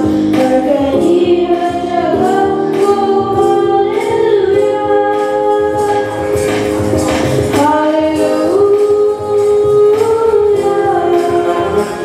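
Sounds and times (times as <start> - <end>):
boy singing into a microphone: 0.0 - 6.5, 7.5 - 12.0
electronic keyboard chords: 0.0 - 12.0.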